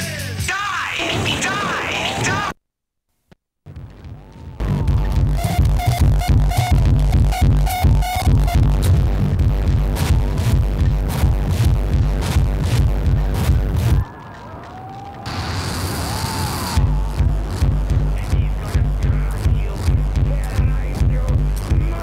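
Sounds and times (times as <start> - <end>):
electronic music with heavy bass beat: 3.7 - 14.4, 15.3 - 22.0.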